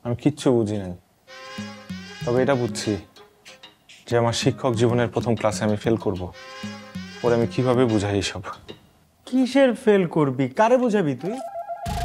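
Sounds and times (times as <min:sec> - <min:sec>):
speech: 0:00.0 - 0:01.0, 0:02.2 - 0:03.1, 0:04.1 - 0:06.4, 0:07.2 - 0:08.6, 0:09.2 - 0:11.4
steady held musical tone: 0:01.3 - 0:08.7, 0:10.9 - 0:12.0
background music: 0:01.3 - 0:09.0, 0:11.1 - 0:12.0.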